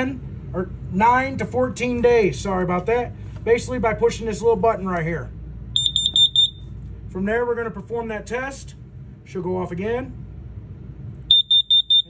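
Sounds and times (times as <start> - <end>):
detector alarm rapid high beeps: 5.8 - 6.7, 11.3 - 12.0.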